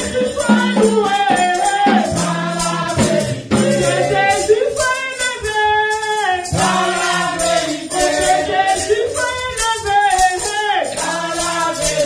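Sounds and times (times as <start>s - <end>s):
tambourine shaken in rhythm: 0.0s - 12.0s
voices singing along: 0.0s - 12.0s.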